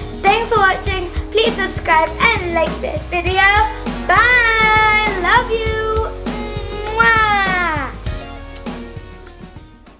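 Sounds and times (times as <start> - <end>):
background music with steady beat: 0.0 - 9.9
high meow-like call: 6.7 - 8.0.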